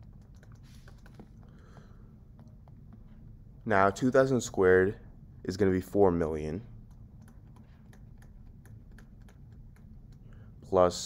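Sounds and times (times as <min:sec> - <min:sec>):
stylus clicks: 0:06.8 - 0:10.4
stylus tapping on drawing tablet: 0:07.2 - 0:10.2.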